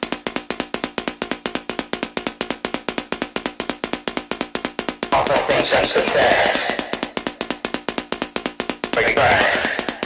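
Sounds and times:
rapid dry percussion hits: 0:00.0 - 0:10.0.

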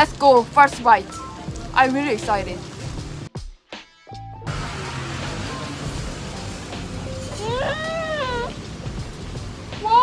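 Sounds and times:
background music: 0:00.0 - 0:10.0
high meow-like calls: 0:07.3 - 0:08.6.

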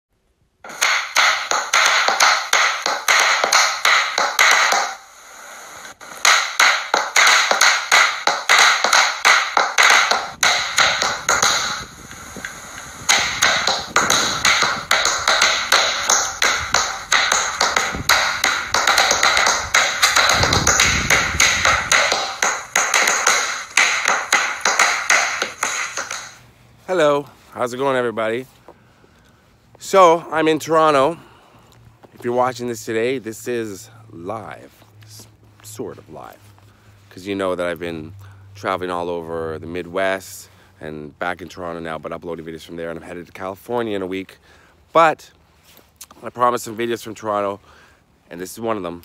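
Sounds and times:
fast sharp taps: 0:00.7 - 0:05.1, 0:05.8 - 0:26.4.

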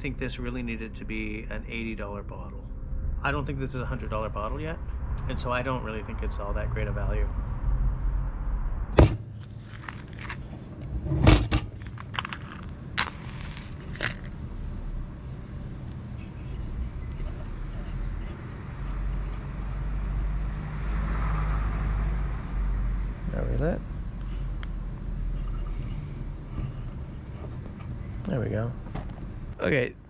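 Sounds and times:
low outdoor rumble: 0:00.0 - 0:21.0, 0:21.6 - 0:30.0.

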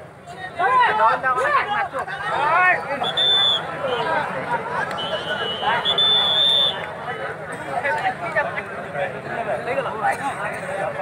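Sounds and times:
crowd chatter: 0:00.0 - 0:11.0
referee's whistle blast: 0:03.0 - 0:04.1, 0:05.0 - 0:06.8.

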